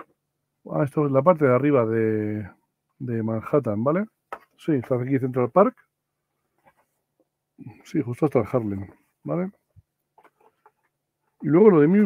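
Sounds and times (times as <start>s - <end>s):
paper map rustling: 6.3s - 12.0s.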